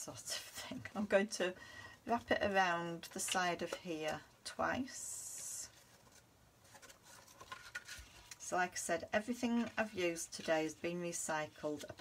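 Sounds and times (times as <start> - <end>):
string wrapping around card: 5.4 - 8.4.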